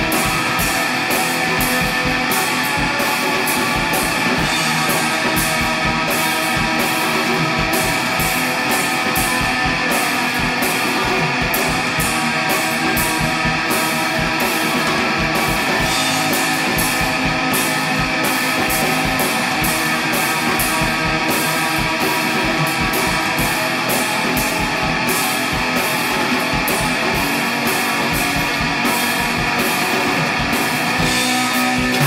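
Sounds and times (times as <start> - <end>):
cymbals struck in a steady beat: 0.0 - 32.0
distorted electric guitars: 0.0 - 32.0
drum kit: 0.0 - 32.0.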